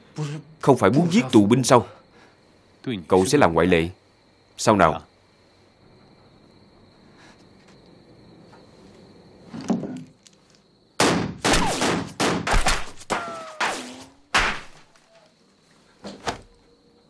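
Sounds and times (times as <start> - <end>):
pistol shots: 11.0 - 14.8.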